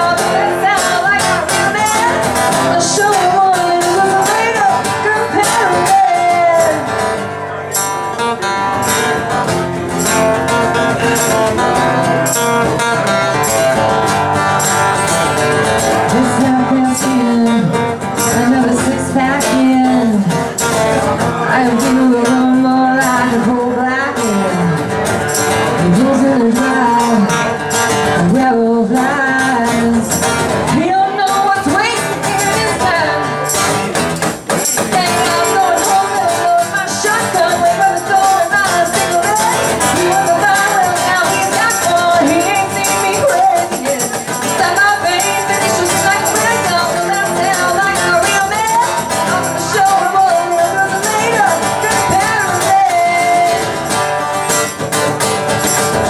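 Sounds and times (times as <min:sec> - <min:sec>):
woman singing: 0:00.0 - 0:07.3, 0:14.6 - 0:33.9, 0:34.5 - 0:54.2
live country song: 0:00.0 - 0:56.0
tambourine: 0:00.3 - 0:19.8, 0:24.1 - 0:28.2, 0:29.4 - 0:56.0.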